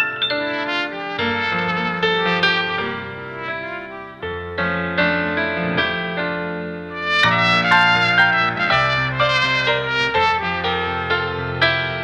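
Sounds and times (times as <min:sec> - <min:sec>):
solo trumpet melody: 0:00.0 - 0:05.8, 0:06.8 - 0:12.0
backing accompaniment with bass: 0:05.3 - 0:11.5.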